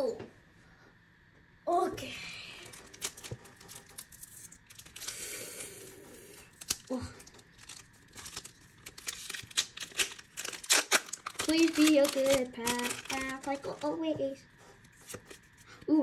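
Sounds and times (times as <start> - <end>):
foil wrapper crinkling and tearing: 2.6 - 14.0, 14.8 - 15.8.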